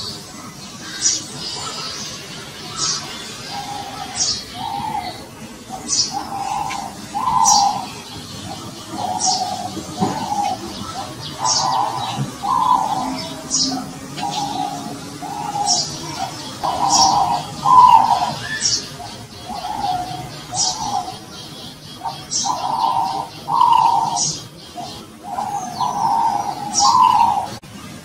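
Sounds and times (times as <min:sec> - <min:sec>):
bird chirping: 0:00.0 - 0:27.6
dove cooing: 0:03.0 - 0:27.6.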